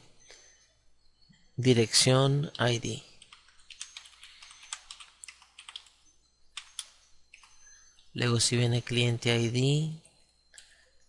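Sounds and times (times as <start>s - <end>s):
typing on computer keyboard: 3.2s - 6.0s, 6.6s - 7.6s.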